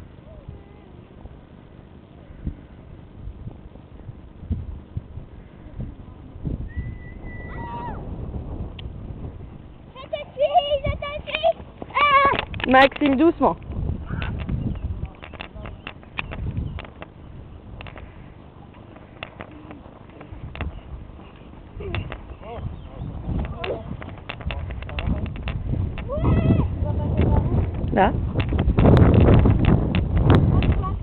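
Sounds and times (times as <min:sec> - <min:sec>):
wind noise on microphone: 0:02.2 - 0:31.0
low rumble: 0:02.3 - 0:12.7.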